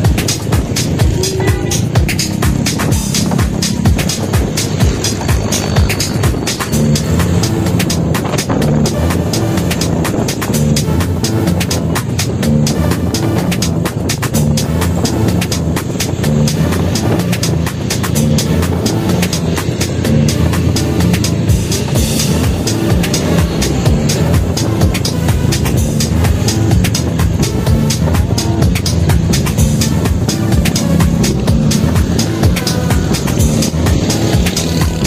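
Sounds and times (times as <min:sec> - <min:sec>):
background music with steady beat: 0:00.0 - 0:35.0.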